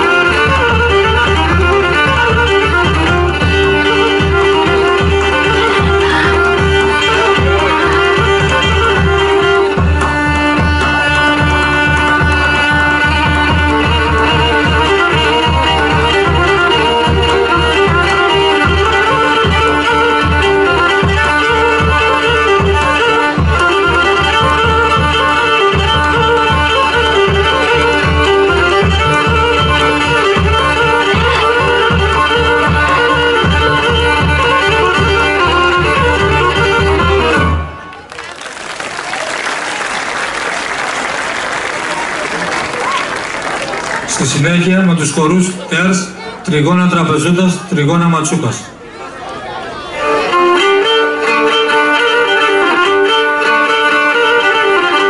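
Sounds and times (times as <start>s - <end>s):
steady drum beat: 0.0s - 37.4s
bowed string melody: 0.0s - 38.3s, 43.6s - 55.0s.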